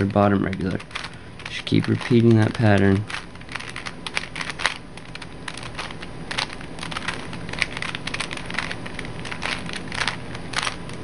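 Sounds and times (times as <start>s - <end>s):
puzzle cube clicking and rattling: 0.0s - 11.0s.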